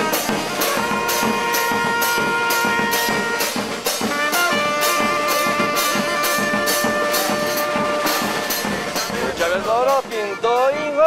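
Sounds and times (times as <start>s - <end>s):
horn note held: 0.0s - 9.2s
snare and bass drum beats: 0.0s - 11.0s.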